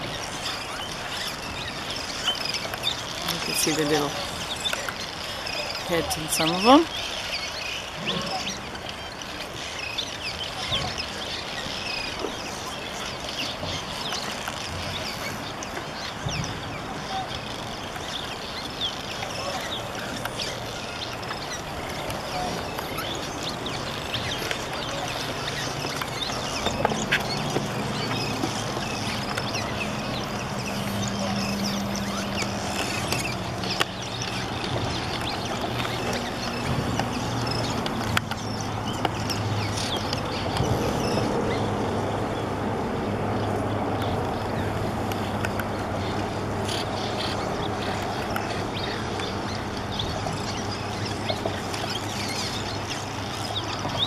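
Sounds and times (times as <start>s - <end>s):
swallows chattering: 0.0s - 42.4s, 43.4s - 54.0s.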